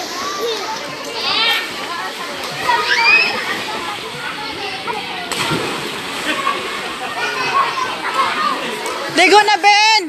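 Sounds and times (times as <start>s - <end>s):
pool water splashing: 0.0s - 10.0s.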